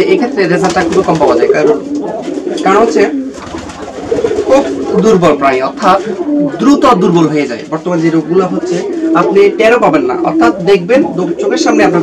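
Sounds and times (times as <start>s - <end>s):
man speaking: 0.0s - 3.3s, 4.3s - 12.0s
pigeons cooing: 0.0s - 12.0s.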